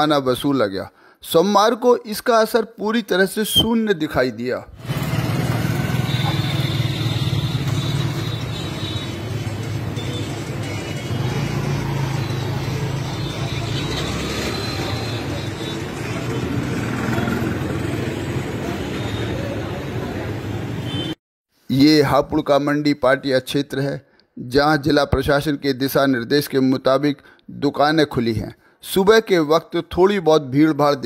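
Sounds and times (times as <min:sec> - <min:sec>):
motorcycles passing: 0:04.8 - 0:21.0.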